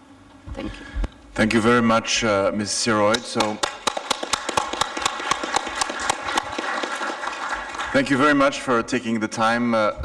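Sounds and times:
audience applause: 3.4s - 8.6s.

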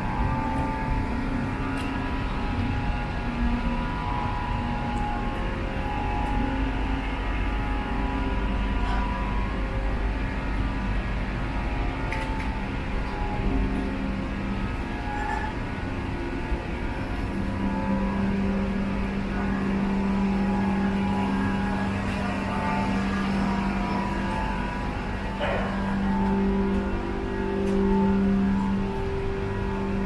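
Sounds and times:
train carriage hum: 0.0s - 30.0s.

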